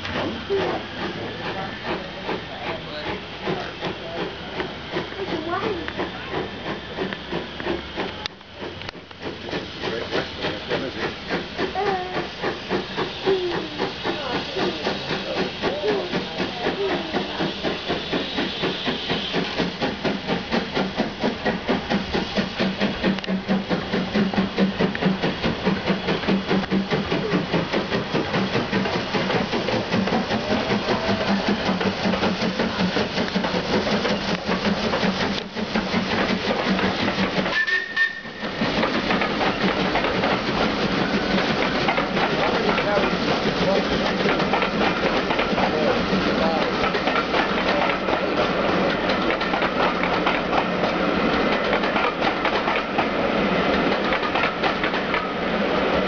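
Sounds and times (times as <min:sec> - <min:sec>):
steam hiss: 0:00.0 - 0:56.0
steam locomotive exhaust beating: 0:00.0 - 0:56.0
train coaches rolling past: 0:00.0 - 0:56.0.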